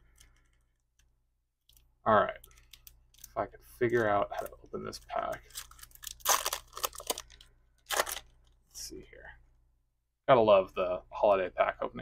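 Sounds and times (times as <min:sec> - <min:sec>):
foil wrapper tearing and crinkling: 0:05.4 - 0:08.3.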